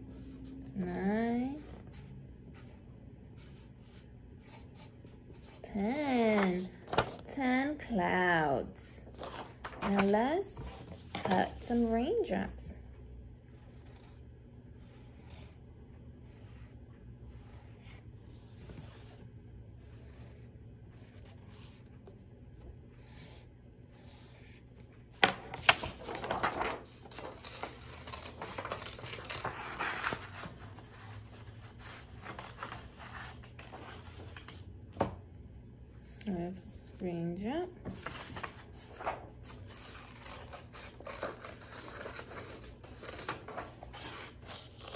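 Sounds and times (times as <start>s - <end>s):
paper rustling: 3.4s - 7.3s, 9.0s - 12.0s, 25.1s - 35.1s, 37.8s - 44.9s
scissors snipping paper: 39.7s - 44.9s.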